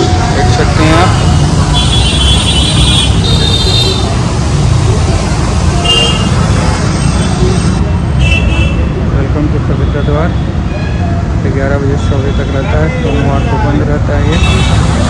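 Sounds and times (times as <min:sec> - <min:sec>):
car horns honking: 0:00.9 - 0:04.2, 0:05.8 - 0:08.9.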